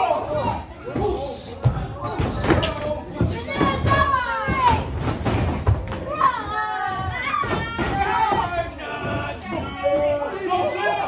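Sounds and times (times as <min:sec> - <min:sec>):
children's voices: 0:00.0 - 0:05.0, 0:06.0 - 0:09.8
wrestlers thudding on ring canvas: 0:00.9 - 0:09.8.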